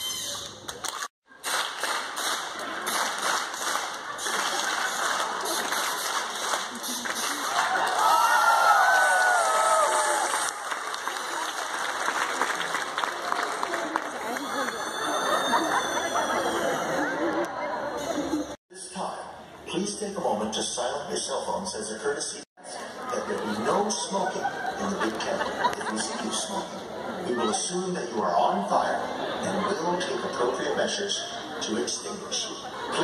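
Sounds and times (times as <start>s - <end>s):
audience clapping and cheering: 0.8s - 15.4s
people talking: 13.6s - 33.0s.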